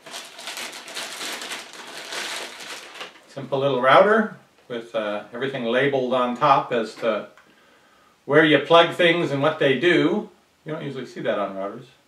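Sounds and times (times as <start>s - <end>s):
plastic bag crinkling: 0.0s - 3.4s.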